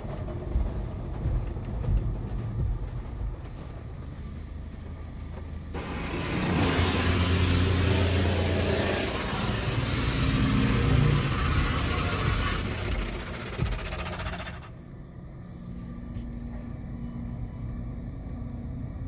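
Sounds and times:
low machine hum: 0:00.0 - 0:19.0
water spraying: 0:05.8 - 0:14.6
car wash brushes scrubbing: 0:05.8 - 0:14.7.

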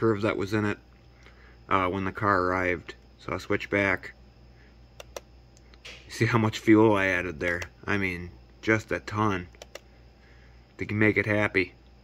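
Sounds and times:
faint low hum: 0:00.0 - 0:12.0
mouse clicks: 0:05.0 - 0:06.0.

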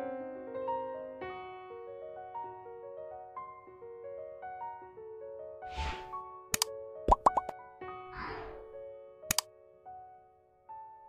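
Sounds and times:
cartoon rising bloops: 0:07.1 - 0:07.5
falling whoosh: 0:08.2 - 0:08.8.

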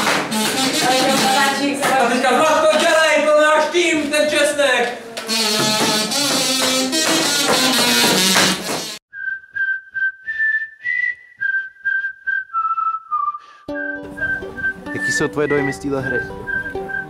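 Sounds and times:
busy background music: 0:00.0 - 0:02.3, 0:13.7 - 0:17.0
whistled tune: 0:09.1 - 0:17.0.

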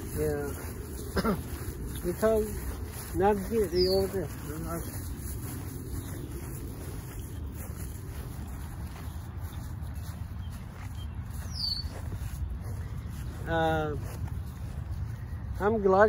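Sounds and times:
wind rumble on microphone: 0:00.0 - 0:16.0
high falling chirp: 0:03.3 - 0:08.2, 0:09.0 - 0:12.4.

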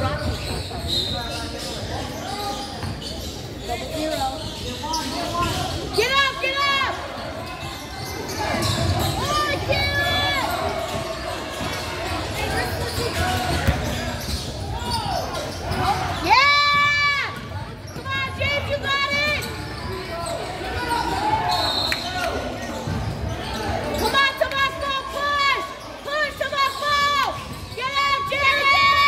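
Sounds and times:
sneakers squeaking on court: 0:00.0 - 0:06.0, 0:06.9 - 0:24.1, 0:25.7 - 0:27.9
basketball bouncing: 0:13.1 - 0:14.5.

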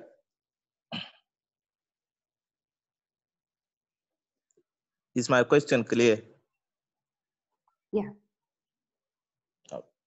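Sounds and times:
person clearing throat: 0:00.9 - 0:01.3.

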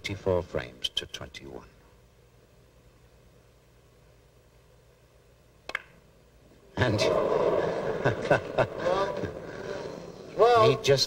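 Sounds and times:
faint arena hush: 0:06.3 - 0:11.0.

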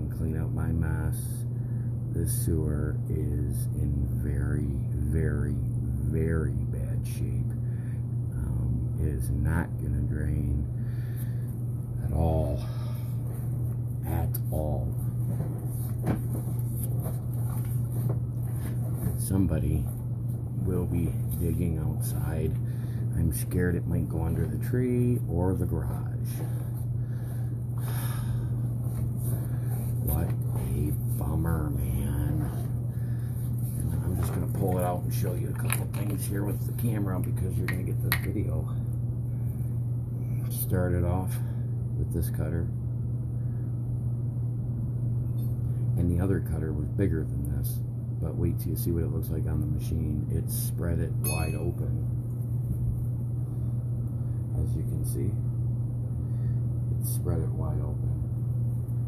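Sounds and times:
low electrical hum: 0:00.0 - 0:59.0.

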